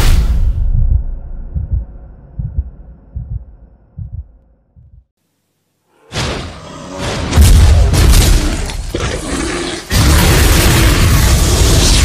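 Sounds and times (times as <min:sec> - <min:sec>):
heartbeat double thuds: 0:00.6 - 0:05.1.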